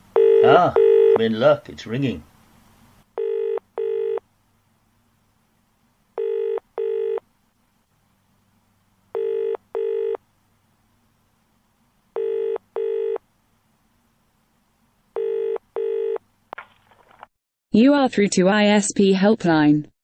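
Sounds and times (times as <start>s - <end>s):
telephone ringback tone: 0.2s - 1.2s, 3.2s - 4.2s, 6.2s - 7.2s, 9.2s - 10.2s, 12.2s - 13.2s, 15.2s - 16.2s.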